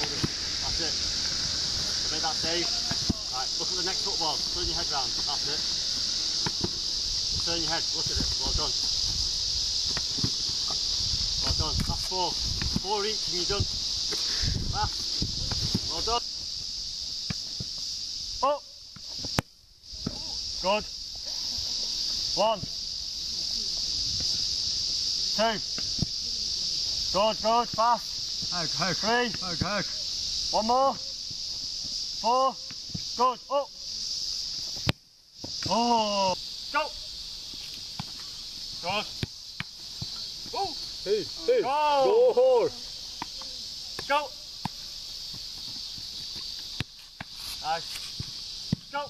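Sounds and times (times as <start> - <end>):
insects droning: 0.0 - 49.0
football kicked thud: 9.9 - 10.8.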